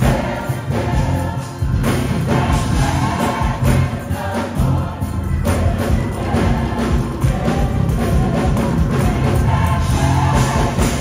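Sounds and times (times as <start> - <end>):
gospel choir singing: 0.0 - 11.0
sustained bass line: 0.0 - 11.0.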